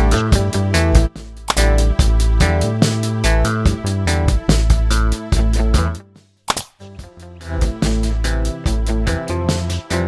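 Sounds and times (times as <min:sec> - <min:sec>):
electronic music: 0:00.0 - 0:06.1, 0:06.8 - 0:10.0.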